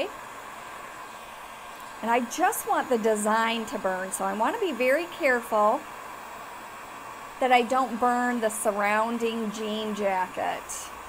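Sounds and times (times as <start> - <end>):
heat gun blowing air: 0.0 - 11.0.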